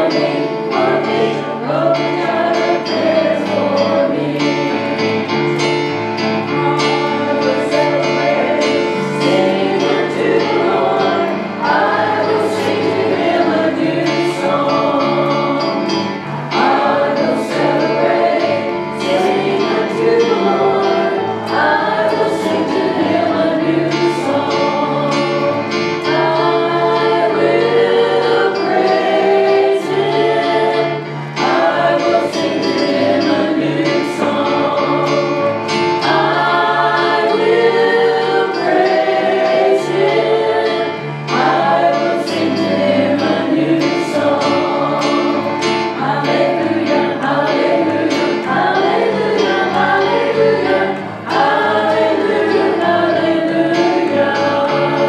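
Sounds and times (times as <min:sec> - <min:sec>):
women singing in harmony: 0:00.0 - 0:55.0.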